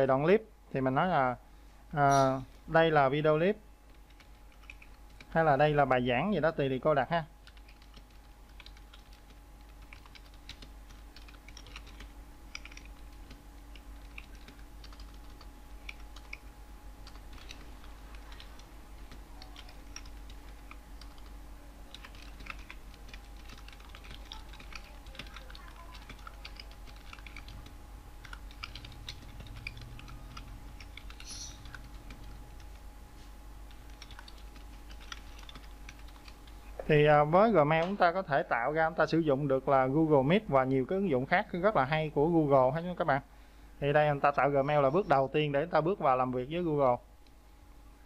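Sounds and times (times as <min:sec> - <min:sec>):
faint steady hum: 0:00.0 - 0:48.0
computer keyboard typing: 0:03.9 - 0:05.4, 0:07.4 - 0:21.3, 0:21.9 - 0:32.9, 0:33.6 - 0:36.6.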